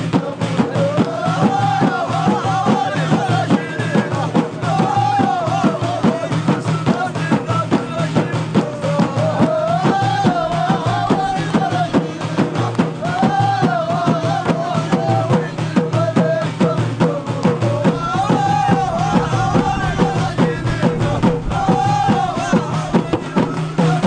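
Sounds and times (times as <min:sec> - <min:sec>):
frame drums beating: 0:00.0 - 0:24.0
men singing in unison: 0:00.0 - 0:24.0.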